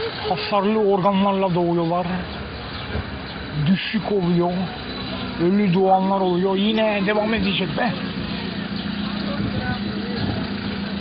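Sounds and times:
road and traffic noise: 0.0 - 11.0
vehicle engine humming: 0.0 - 11.0.

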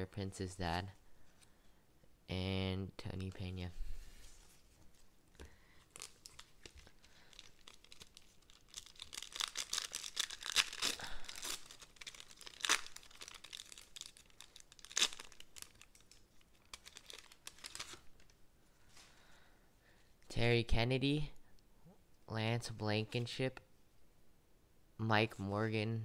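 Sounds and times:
sharp foil crackles: 5.8 - 18.1
foil wrapper tearing and crinkling: 5.9 - 18.1.

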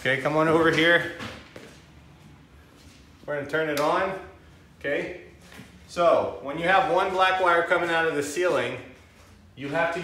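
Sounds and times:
man speaking: 5.9 - 8.9, 9.6 - 10.0.

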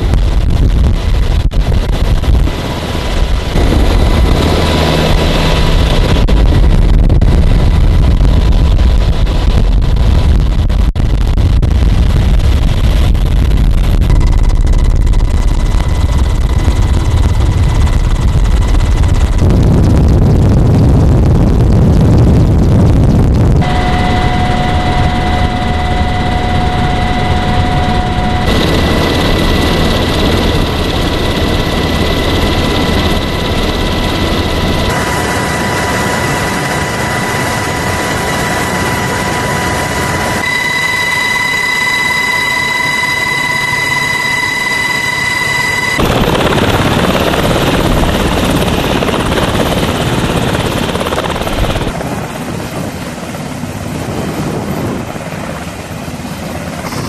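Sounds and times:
helicopter rumble: 0.0 - 57.0
turbine whine: 0.0 - 57.0.

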